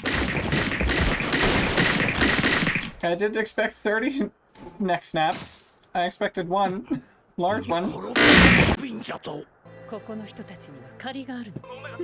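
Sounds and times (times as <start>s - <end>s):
rapid sharp cracks: 0.0s - 3.1s.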